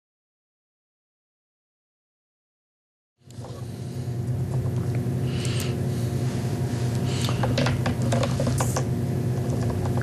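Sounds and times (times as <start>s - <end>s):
low electrical hum: 3.2s - 10.0s.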